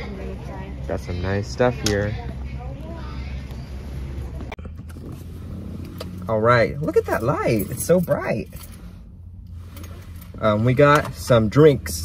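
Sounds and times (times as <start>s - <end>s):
car rumble inside cabin: 2.0s - 12.0s.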